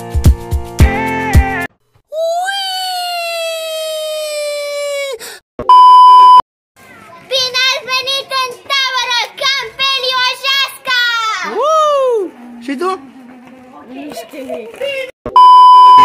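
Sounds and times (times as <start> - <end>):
child's long yell: 2.1 - 5.2
steady beep tone: 5.6 - 6.4, 15.3 - 16.0
girl talking quickly: 6.9 - 11.6, 13.7 - 15.1.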